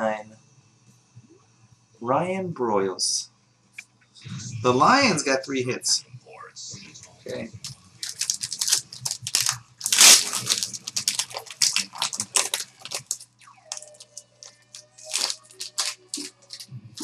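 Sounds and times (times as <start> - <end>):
background music held tones: 0.0 - 17.0
wrapper tearing and crumpling: 7.6 - 17.0.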